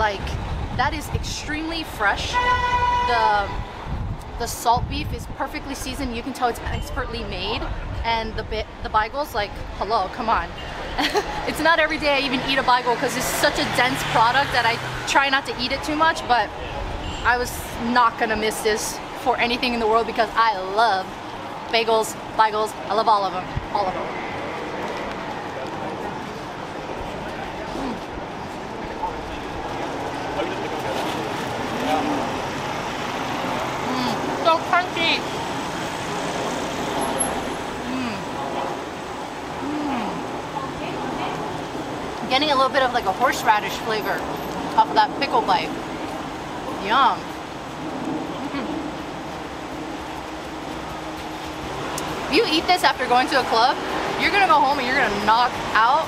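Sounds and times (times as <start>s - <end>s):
passersby's voices: 0.0s - 56.0s
road traffic: 0.0s - 56.0s.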